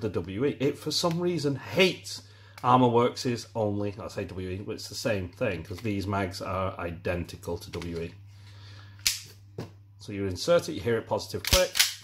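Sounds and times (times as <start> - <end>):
pistol magazine clicking into place: 11.4 - 12.0.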